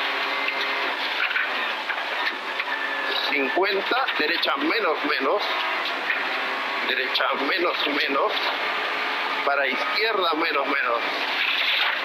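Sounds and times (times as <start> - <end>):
car engine steady note: 0.0 - 12.0
tyre and gravel road noise: 0.0 - 12.0.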